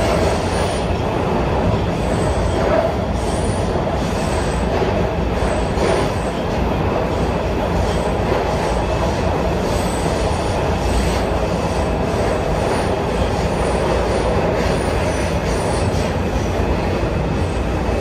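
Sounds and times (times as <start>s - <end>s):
subway wheels rumbling on rail: 0.0s - 18.0s.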